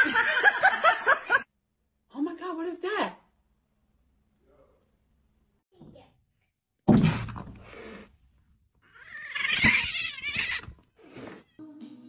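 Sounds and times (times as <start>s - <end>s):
cats yowling: 8.8s - 11.6s.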